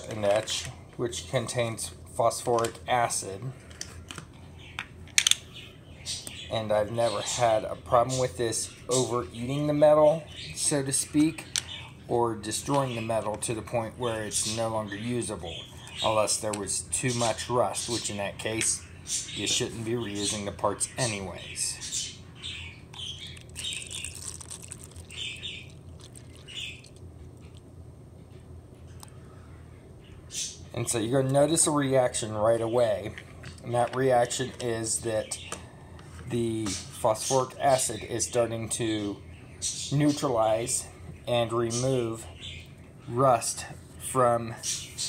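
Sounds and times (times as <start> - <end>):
low steady hum: 0.0 - 45.0
liquid pouring with gurgling: 23.4 - 27.6.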